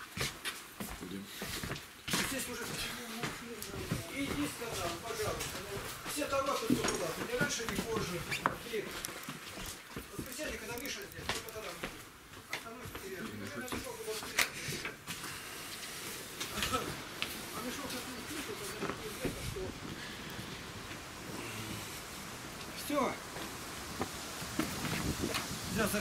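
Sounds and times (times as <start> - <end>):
footstep knocks and clicks: 0.2 - 15.2
low indistinct voices: 10.0 - 23.3.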